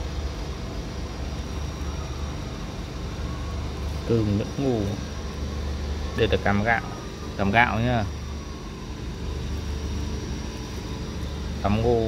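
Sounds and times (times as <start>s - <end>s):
faint high-pitched tone: 0.0s - 12.0s
low mechanical hum: 0.0s - 12.0s.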